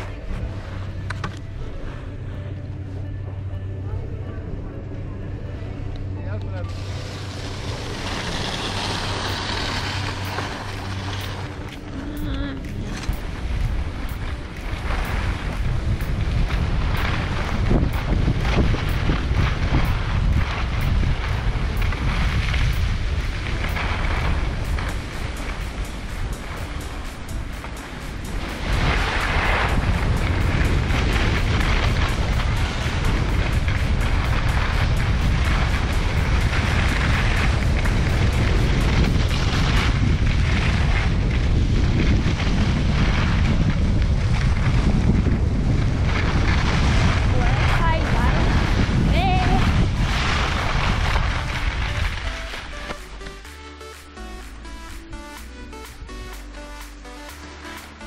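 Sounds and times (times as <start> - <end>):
wind buffeting microphone: 6.6 - 52.4
skis scraping over snow: 6.6 - 54.2.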